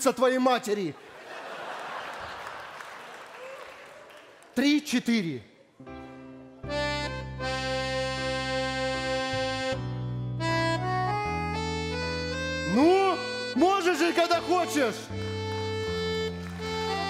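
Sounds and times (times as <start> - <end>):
piano accordion playing: 5.8 - 17.0.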